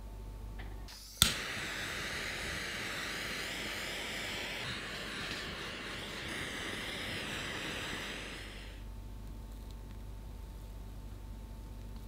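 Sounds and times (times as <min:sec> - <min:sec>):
heat tool airy hiss: 0:00.9 - 0:08.9.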